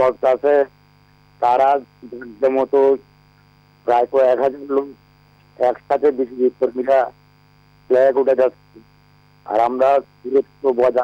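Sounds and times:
electrical mains hum: 0:00.0 - 0:11.0
caller speaking on telephone: 0:01.4 - 0:03.0, 0:03.9 - 0:05.0, 0:05.6 - 0:07.2, 0:07.9 - 0:08.6, 0:09.5 - 0:11.0.

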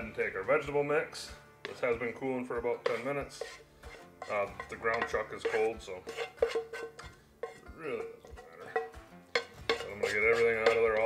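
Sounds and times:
wooden spatula scraping frying pan: 0:01.6 - 0:11.0
pan knocking against metal bowl: 0:04.2 - 0:11.0
metal bowl ringing: 0:07.9 - 0:10.0.

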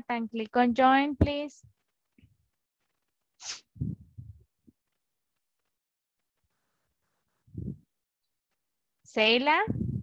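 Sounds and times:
puff of air on microphone: 0:03.4 - 0:04.4.

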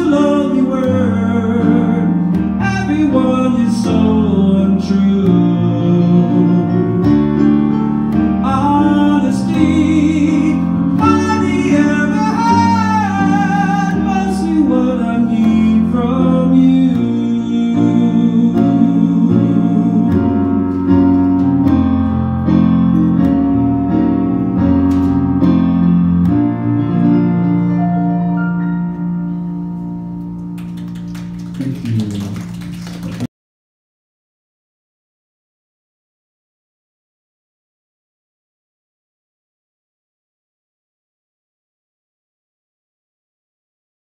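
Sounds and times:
man singing a slow ballad: 0:00.0 - 0:07.6, 0:08.4 - 0:21.2
digital piano chords: 0:00.0 - 0:33.3.

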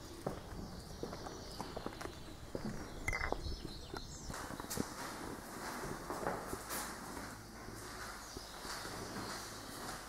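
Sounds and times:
footsteps on sandy ground: 0:00.0 - 0:10.0.

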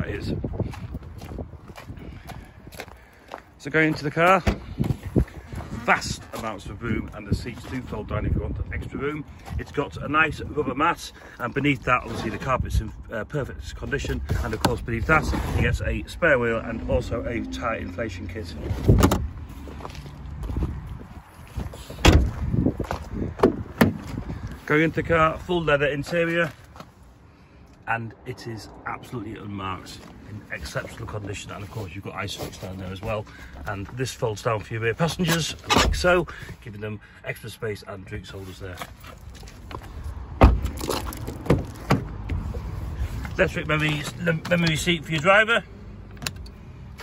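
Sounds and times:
car door thump shut: 0:22.0 - 0:22.4, 0:40.4 - 0:40.8
tailgate shutting thump: 0:22.0 - 0:22.4.

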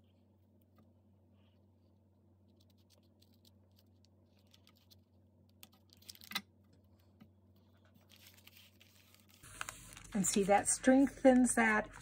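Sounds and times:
paper folder rustling and clicking: 0:07.9 - 0:12.0.

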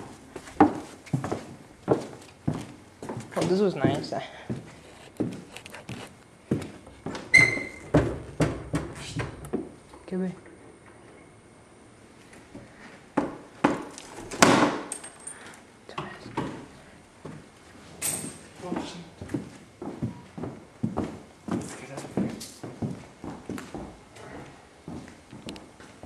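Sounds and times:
footsteps on wooden floor: 0:00.0 - 0:09.8, 0:16.4 - 0:17.5, 0:18.6 - 0:26.0
loud bangs on wood: 0:13.2 - 0:14.9.

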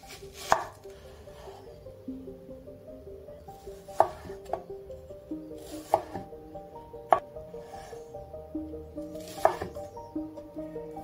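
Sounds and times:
soft background music: 0:00.0 - 0:11.0
knife slicing onion: 0:09.2 - 0:09.8.

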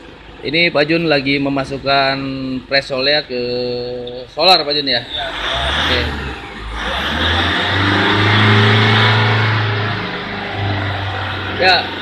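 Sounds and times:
diesel engine revving: 0:04.9 - 0:12.0.

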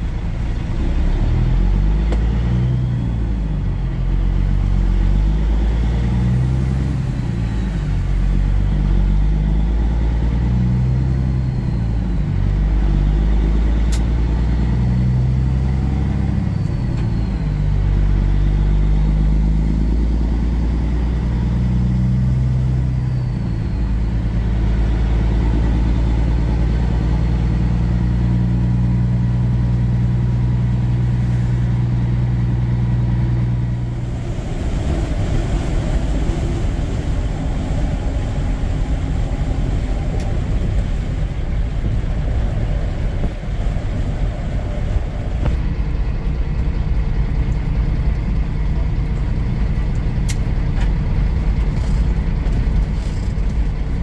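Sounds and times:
truck diesel engine: 0:00.0 - 0:54.0.

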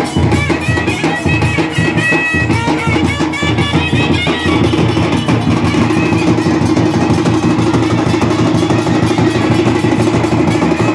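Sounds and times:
barrel drums fast beat: 0:00.0 - 0:10.9.

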